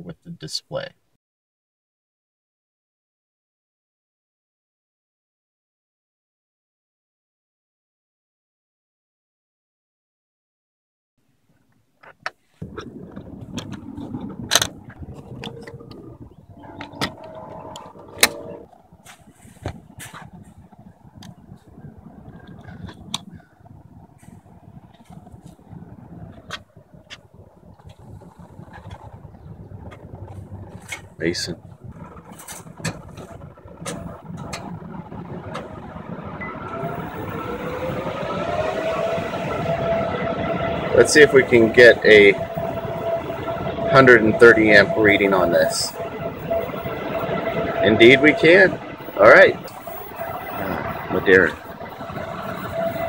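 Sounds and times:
low outdoor rumble: 11.2s - 53.0s
steady hum: 12.6s - 53.0s.

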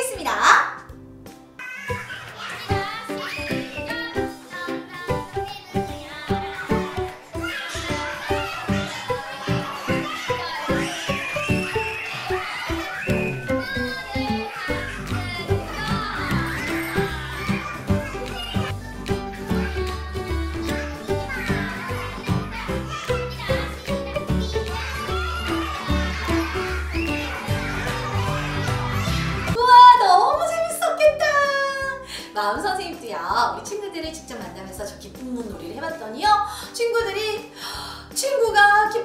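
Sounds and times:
instrumental backing track: 0.0s - 29.6s
children's play song: 0.0s - 39.0s
children singing and calling out: 1.6s - 29.6s
person singing children's song: 18.3s - 29.1s.

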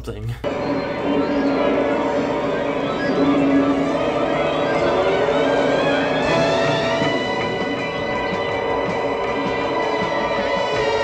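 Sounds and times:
sustained film score tones: 0.4s - 11.0s.

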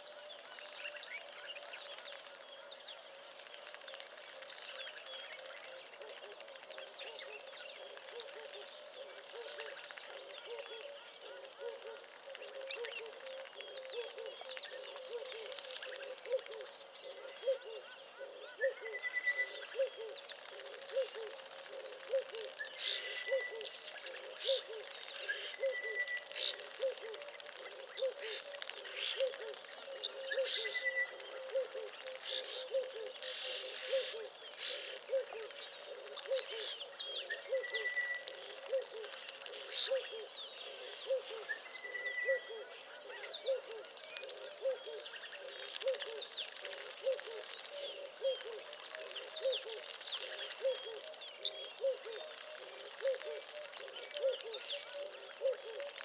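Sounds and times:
birds calling and chirping: 0.0s - 56.0s.

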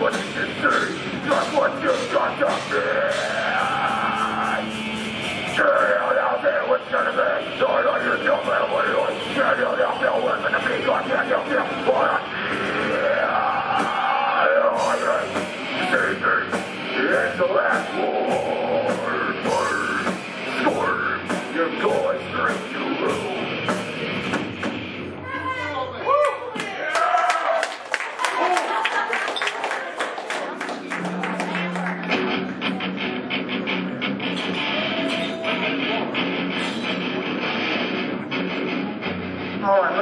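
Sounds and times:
drum kit with cymbal hits: 0.0s - 25.4s, 30.8s - 39.6s
distorted electric guitars and bass: 0.0s - 26.0s, 30.7s - 40.0s
person shouting vocals: 2.4s - 4.6s.

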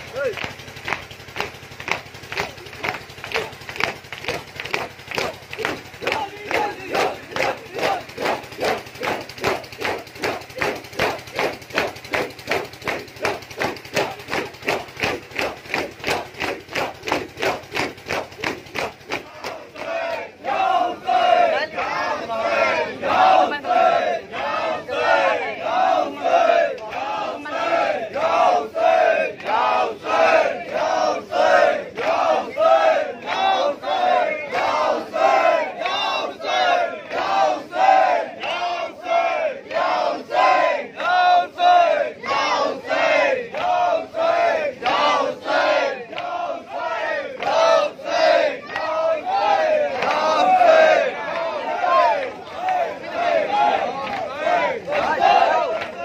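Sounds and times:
crowd chanting rhythmically: 0.0s - 56.0s.

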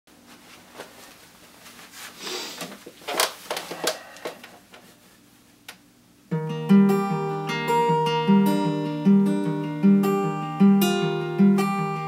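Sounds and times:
guitar handling clicks and rustles: 2.6s - 4.9s.

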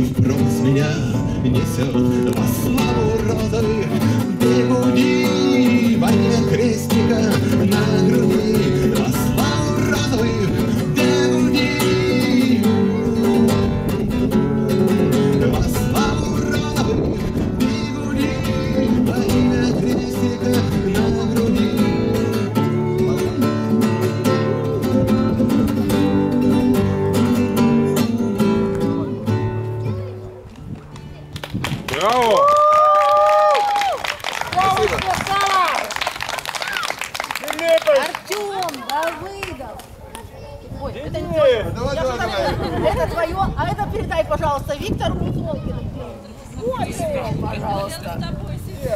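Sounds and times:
acoustic guitar playing: 0.0s - 31.7s.

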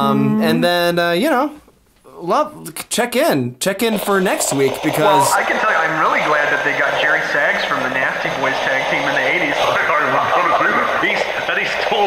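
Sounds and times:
distorted radio voice: 4.0s - 12.0s.

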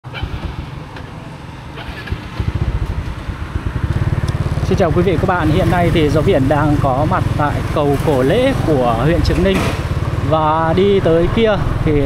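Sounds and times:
motorbikes passing: 0.0s - 12.0s
street traffic: 0.0s - 12.0s.

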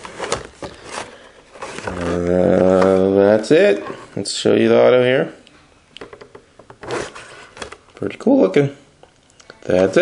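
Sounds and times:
plastic case scraping on wood: 0.0s - 3.0s, 6.7s - 7.8s.

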